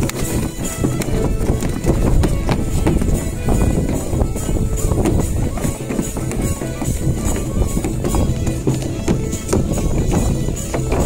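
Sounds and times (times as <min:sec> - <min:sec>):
bagpipe playing folk dance tune: 0:00.0 - 0:11.0
feet stamping on wooden boards: 0:00.0 - 0:11.0
frame drum beating time: 0:00.0 - 0:11.0.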